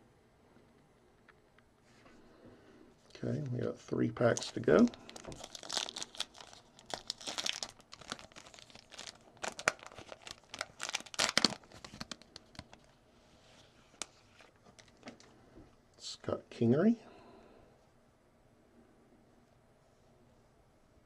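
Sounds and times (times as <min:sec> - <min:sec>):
foil wrapper tearing and crinkling: 0:04.3 - 0:12.9.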